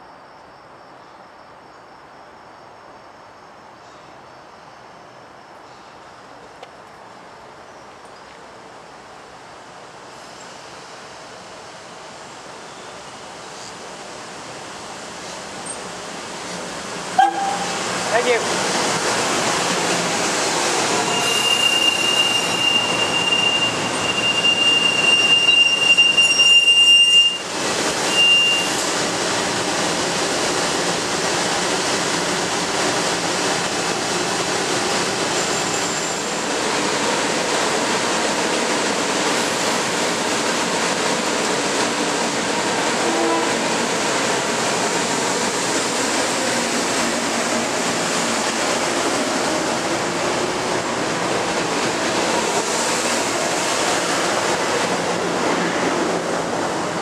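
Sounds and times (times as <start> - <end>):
train moving off: 9.5 - 57.0
train brakes squealing: 17.2 - 17.8, 20.9 - 28.9, 35.3 - 36.4.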